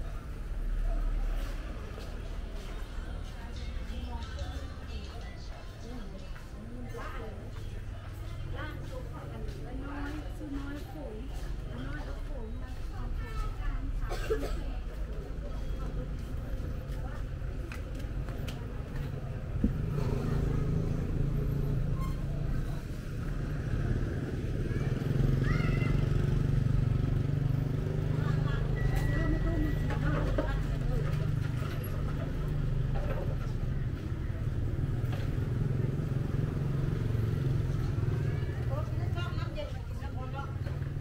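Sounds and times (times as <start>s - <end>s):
people's voices: 0.0s - 41.0s
engine rumbling: 6.2s - 41.0s.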